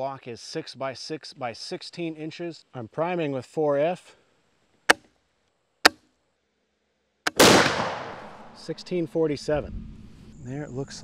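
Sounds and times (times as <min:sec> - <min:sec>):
sharp metallic rifle lock click: 0:07.3 - 0:08.2.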